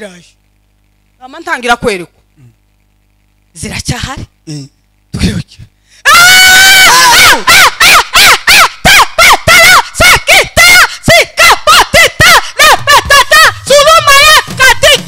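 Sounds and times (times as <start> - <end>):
woman screaming into microphone: 6.1 - 15.0.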